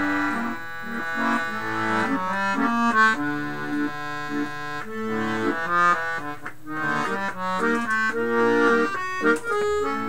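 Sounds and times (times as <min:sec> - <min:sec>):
accordion playing slow waltz: 0:00.0 - 0:10.0.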